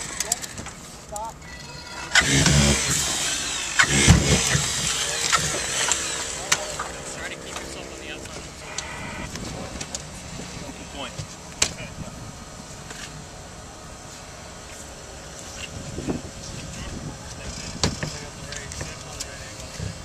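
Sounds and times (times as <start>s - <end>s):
steady hum: 2.2s - 20.0s.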